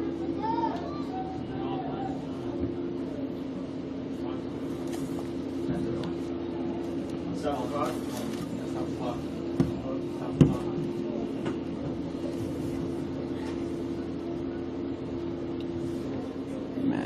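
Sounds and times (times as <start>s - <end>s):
faint distant voices: 0.0s - 17.0s
steady low hum: 0.0s - 17.0s.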